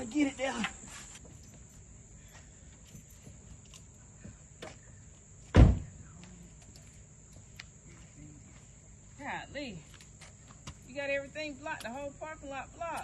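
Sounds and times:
car panel slamming shut: 0:05.6 - 0:05.8.

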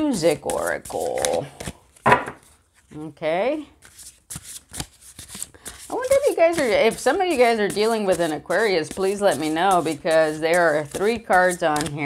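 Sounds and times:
cards being shuffled: 0:00.0 - 0:03.0, 0:03.8 - 0:12.0.

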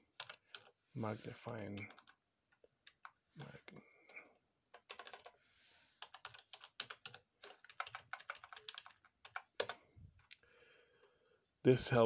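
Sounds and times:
typing on computer keyboard: 0:00.0 - 0:00.7, 0:01.8 - 0:03.2, 0:04.1 - 0:05.4, 0:06.0 - 0:10.4.

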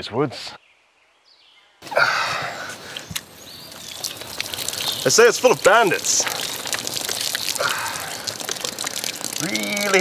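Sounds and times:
water jet gushing and splashing: 0:02.4 - 0:10.0.

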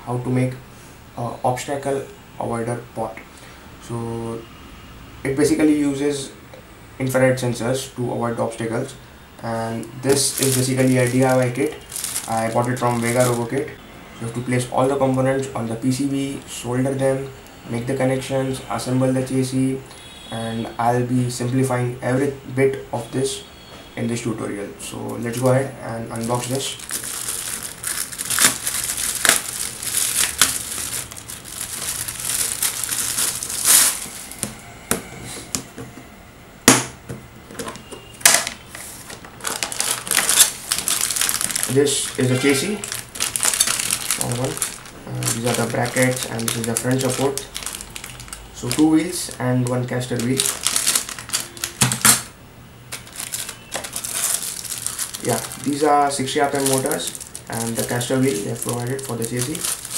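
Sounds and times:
plastic wrap crinkling and tearing: 0:09.9 - 0:13.7, 0:26.1 - 0:34.6, 0:37.7 - 0:52.3, 0:52.9 - 0:59.9
plastic box clicks and knocks: 0:51.8 - 0:52.2.

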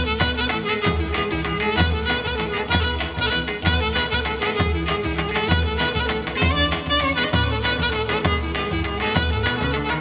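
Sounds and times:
clarinet melody: 0:00.0 - 0:10.0
drum beat: 0:00.0 - 0:10.0
keyboard accompaniment: 0:00.0 - 0:10.0.

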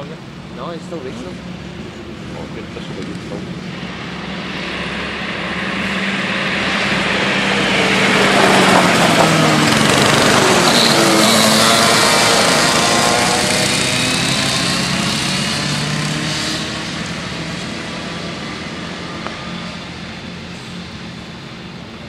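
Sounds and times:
kart engines running: 0:00.6 - 0:22.0.

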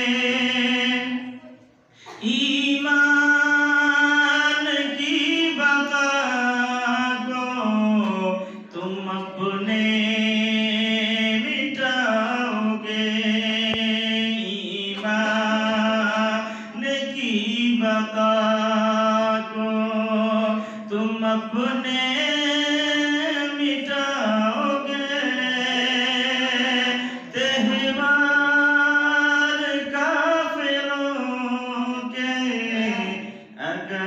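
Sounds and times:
man chanting unaccompanied: 0:02.2 - 0:34.0.

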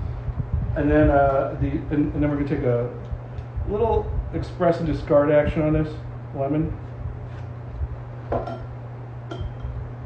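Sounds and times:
steady low hum: 0:00.0 - 0:10.0
glass knocking on counter: 0:08.3 - 0:08.7
glass clinking: 0:08.4 - 0:09.8.

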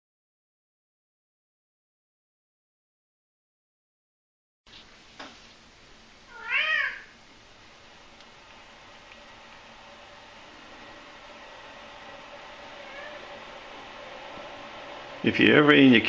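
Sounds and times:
cat meowing: 0:06.3 - 0:07.2, 0:12.8 - 0:13.4.

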